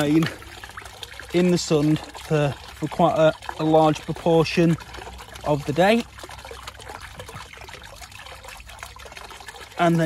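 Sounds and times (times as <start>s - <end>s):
patter of small drips: 0.0s - 10.0s
water trickling and splashing: 0.0s - 10.0s.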